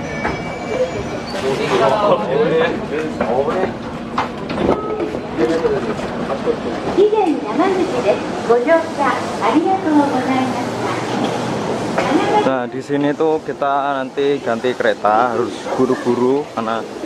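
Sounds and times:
train running noise: 0.0s - 17.0s
voices on platform: 0.2s - 17.0s.

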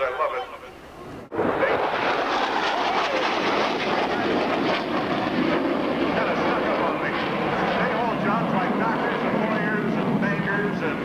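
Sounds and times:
jet engines at high power: 0.8s - 11.0s.

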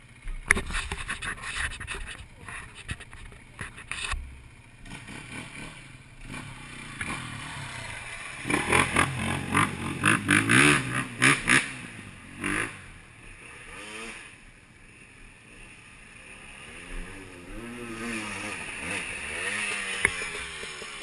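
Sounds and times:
motorcycle engine revving: 0.0s - 21.0s.

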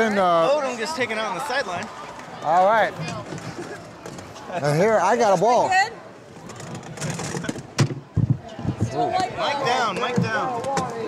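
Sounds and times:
wheelchairs colliding with metal knocks: 6.4s - 9.0s, 9.8s - 11.0s
microphone being knocked and handled: 6.5s - 9.1s, 9.9s - 11.0s.

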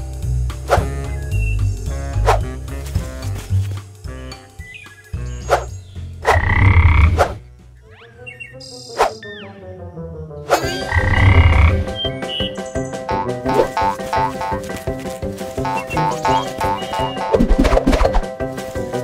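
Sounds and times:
music with repeating notes: 0.0s - 7.1s, 8.1s - 19.0s
whistling glides: 4.7s - 7.4s, 8.2s - 9.4s, 10.5s - 13.0s
frog croak: 6.3s - 7.2s, 10.7s - 11.9s.

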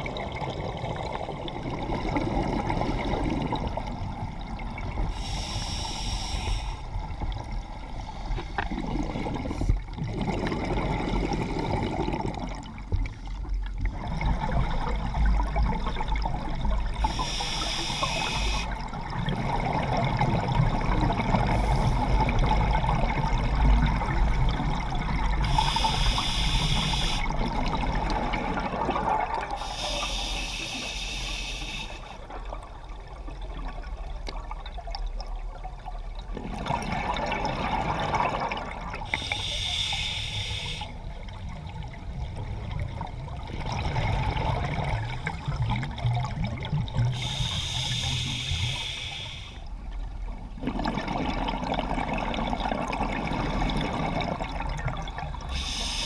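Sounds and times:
scuba regulator breaths hissing: 5.1s - 7.0s, 17.0s - 18.8s, 25.4s - 27.3s, 29.6s - 32.2s, 39.1s - 41.0s, 47.1s - 49.7s, 55.5s - 56.0s
gurgling exhaust bubbles: 8.6s - 13.0s, 41.6s - 47.4s, 50.4s - 56.0s.

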